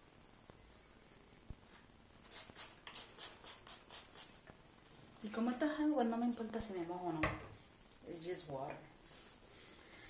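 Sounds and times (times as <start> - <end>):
spray bottle hissing sprays: 2.3 - 4.4.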